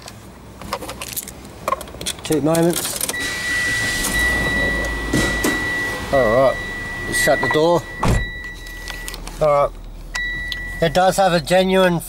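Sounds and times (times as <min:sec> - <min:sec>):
car engine starting and idling: 0:00.0 - 0:12.0
high warning tone: 0:03.1 - 0:11.4.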